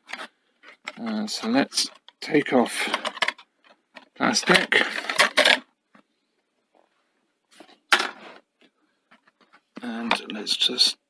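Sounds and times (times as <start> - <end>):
cover rustling and clicking: 2.8 - 6.0.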